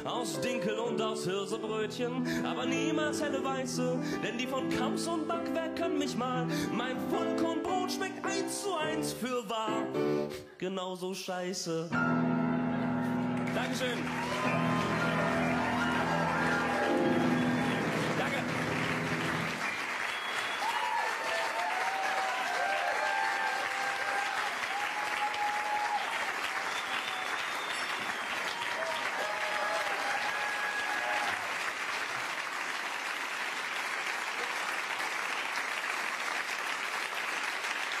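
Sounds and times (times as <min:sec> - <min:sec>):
audience applauding: 0:13.0 - 0:38.0.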